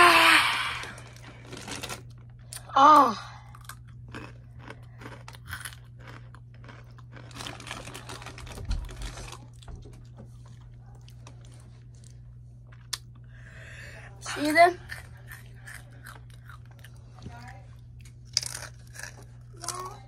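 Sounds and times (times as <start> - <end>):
chewing crunchy chips: 0.7 - 13.4, 14.4 - 20.0.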